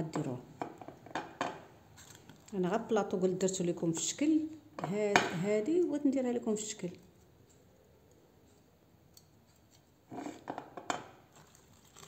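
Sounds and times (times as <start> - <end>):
bottle and spatula scraping: 10.1 - 10.6.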